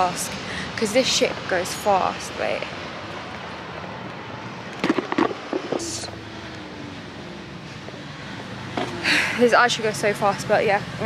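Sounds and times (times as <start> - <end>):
wind and road noise: 0.0 - 11.0.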